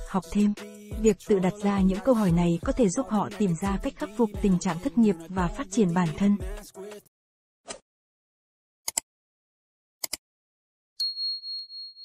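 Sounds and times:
high bell ding: 11.0 - 12.0.

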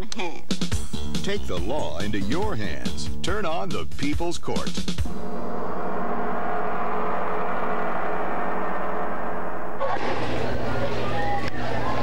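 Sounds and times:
gong-like tone ringing: 5.0 - 10.5
low hum: 5.0 - 11.2.

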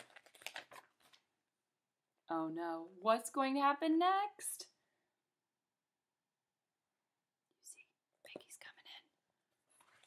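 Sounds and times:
faint whispered voice: 7.6 - 9.2.

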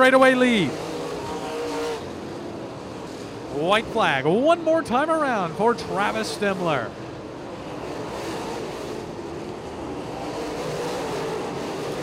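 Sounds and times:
race car engines droning: 0.0 - 12.0.

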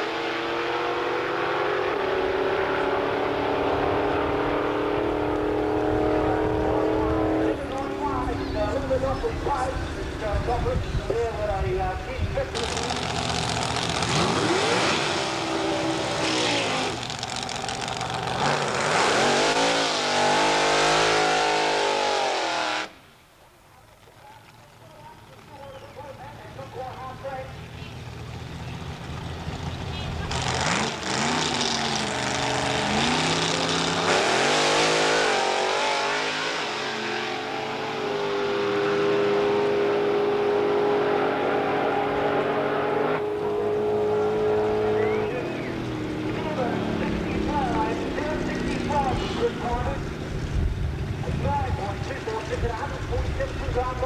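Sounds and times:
drag racing engines revving: 0.0 - 23.0, 25.2 - 54.0.

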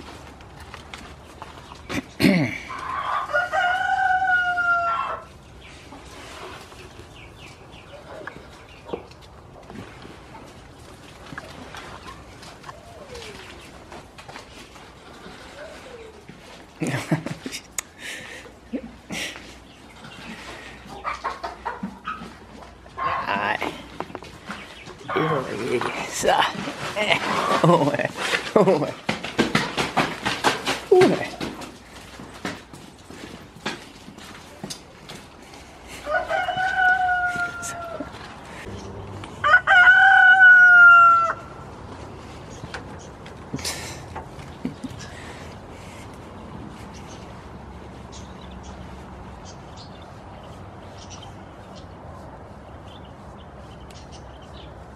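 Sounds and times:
rooster crowing: 2.7 - 5.3, 36.0 - 38.3, 39.4 - 41.6
goats rustling on straw: 2.7 - 17.4, 22.0 - 38.8.

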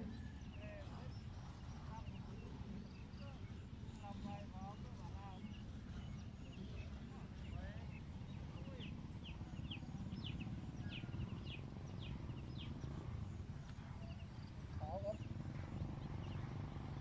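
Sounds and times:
bird chirping: 0.0 - 17.0
low rumbling outdoor noise: 0.0 - 17.0.

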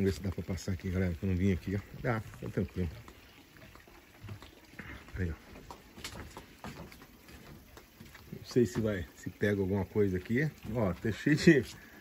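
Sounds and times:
footsteps on wooden deck: 1.8 - 9.2, 10.4 - 12.0.

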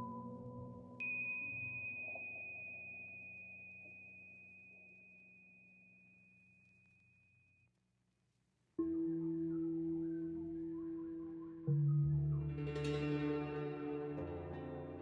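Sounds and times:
soft background music: 0.0 - 3.0, 8.8 - 15.0
high pure chime ringing: 0.9 - 7.6.

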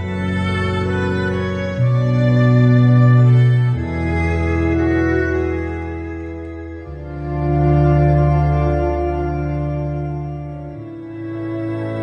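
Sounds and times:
organ playing sustained chords: 0.0 - 12.0.

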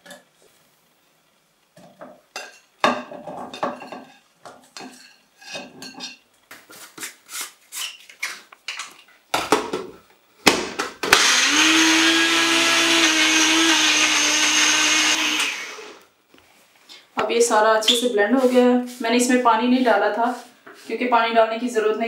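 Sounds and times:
blender motor grinding: 11.1 - 16.0.

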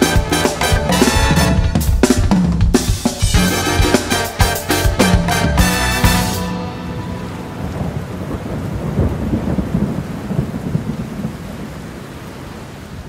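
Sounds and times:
low rumbling noise: 6.4 - 9.9.

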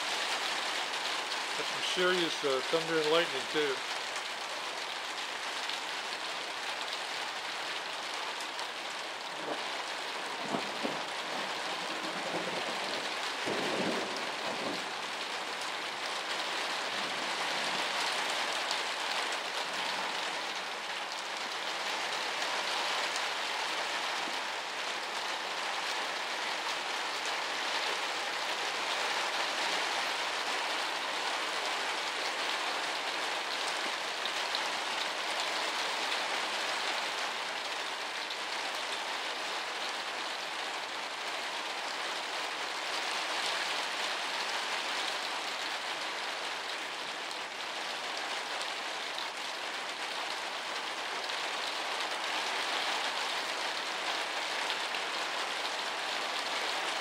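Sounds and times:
heavy rain on roof and pavement: 0.0 - 57.0.

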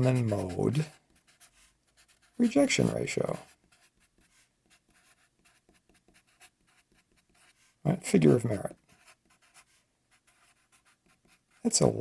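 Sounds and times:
felt-tip marker scratching: 0.0 - 7.8, 8.8 - 11.7.

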